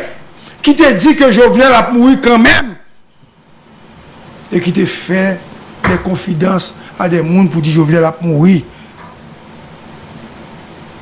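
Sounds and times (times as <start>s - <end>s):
background room hiss: 0.0s - 11.0s.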